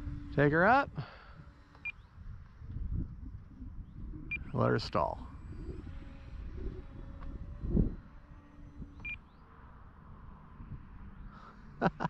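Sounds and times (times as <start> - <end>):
wind buffeting microphone: 0.0 - 11.3.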